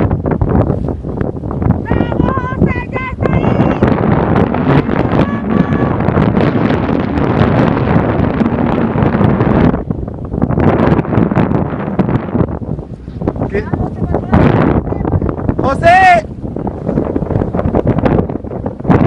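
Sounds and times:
wind buffeting microphone: 0:00.0 - 0:19.0
high voice calling out: 0:05.0 - 0:06.0.

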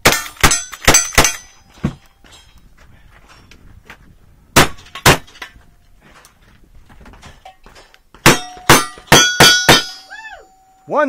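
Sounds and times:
ring of struck steel: 0:08.3 - 0:10.9.

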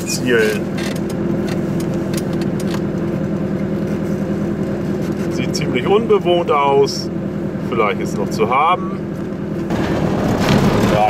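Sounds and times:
road and wind noise: 0:00.0 - 0:11.0
two-stroke car engine running: 0:00.0 - 0:11.0.

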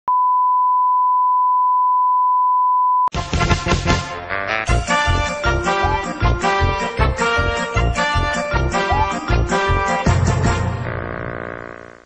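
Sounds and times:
steady test tone beep: 0:00.1 - 0:03.1
music with a beat: 0:03.1 - 0:10.8.

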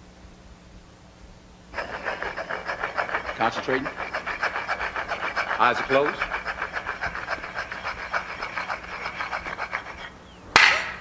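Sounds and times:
blocks rubbing together: 0:01.8 - 0:10.3.

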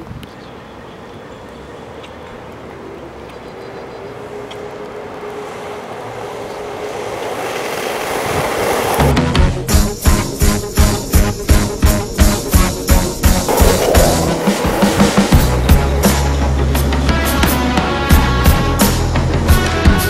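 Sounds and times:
skateboard wheels rolling on asphalt: 0:00.0 - 0:20.0.

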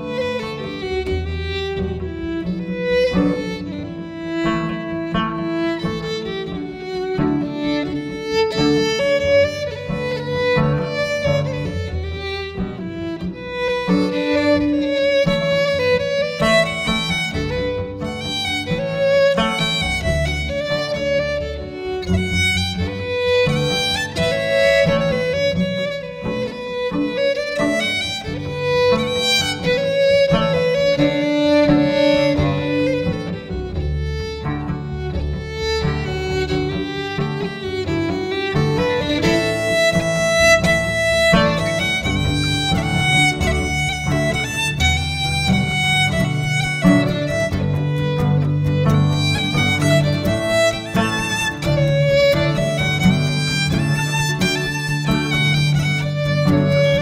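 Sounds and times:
acoustic guitar accompaniment: 0:00.0 - 0:57.0
cello low line: 0:00.0 - 0:57.0
fiddle melody: 0:00.0 - 0:57.0.

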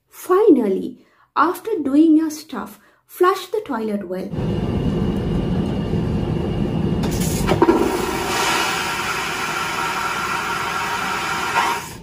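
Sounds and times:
toilet flushing: 0:06.5 - 0:12.0.

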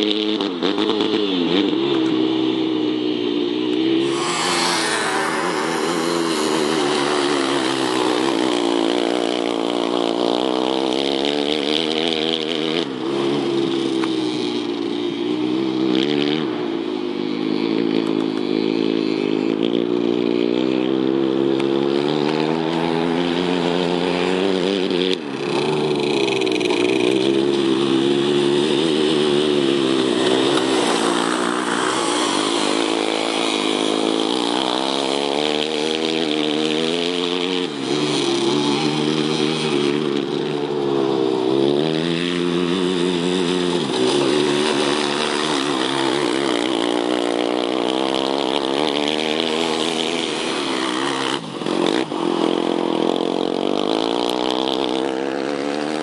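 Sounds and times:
go-kart engines revving: 0:00.0 - 0:56.0.

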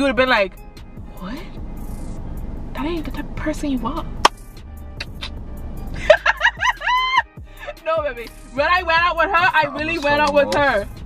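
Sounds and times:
faint background music: 0:00.0 - 0:11.0
car cabin hum: 0:01.3 - 0:04.4
sharp click: 0:05.0 - 0:05.4.

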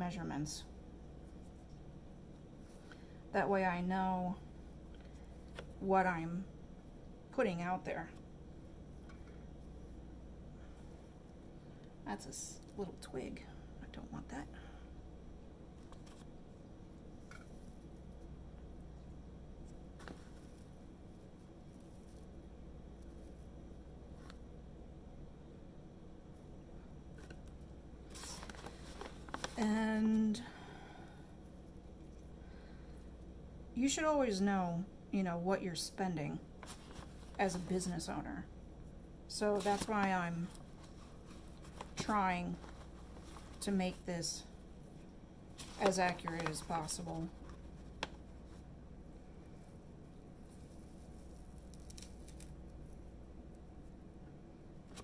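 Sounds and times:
dried petals rustling: 0:27.2 - 0:33.3, 0:36.6 - 0:53.2.

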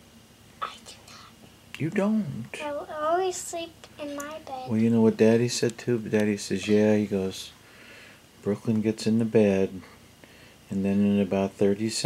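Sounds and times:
soft whispering: 0:00.6 - 0:01.4
person speaking: 0:01.8 - 0:07.6.

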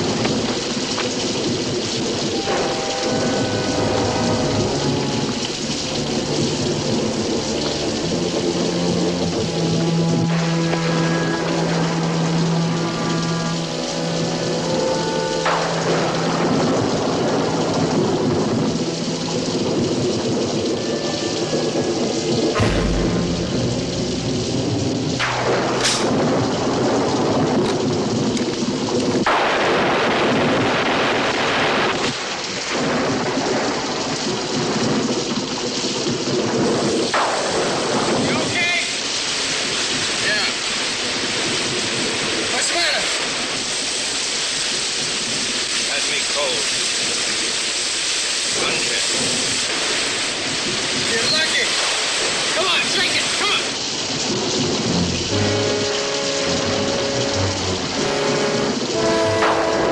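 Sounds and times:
rumbling booms: 0:00.0 - 0:38.6
rain-like hiss: 0:00.0 - 0:59.9
orchestral score held notes: 0:02.2 - 0:27.0, 0:54.6 - 0:59.9.

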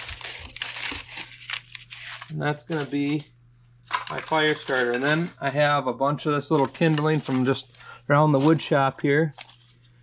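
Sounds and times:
paper crinkling and rustling: 0:00.0 - 0:03.1, 0:03.9 - 0:05.4, 0:06.4 - 0:10.0.

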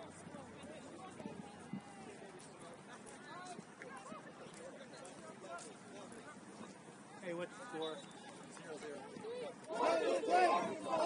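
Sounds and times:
voices calling out: 0:07.4 - 0:11.0.

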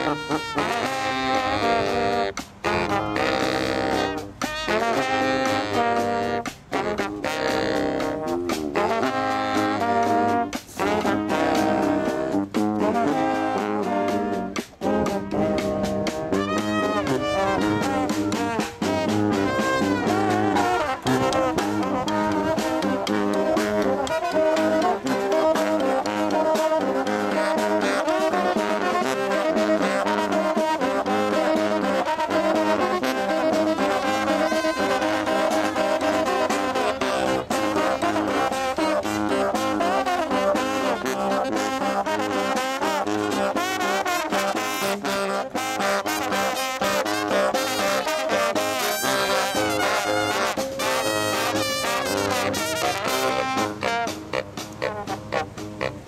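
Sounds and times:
brass band playing: 0:00.0 - 0:56.0
snare drum beat: 0:00.0 - 0:56.0.

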